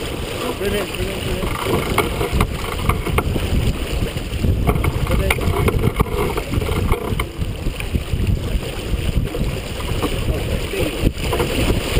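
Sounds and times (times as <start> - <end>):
water rushing along hull: 0.0 - 11.9
wind buffeting microphone: 0.0 - 11.9.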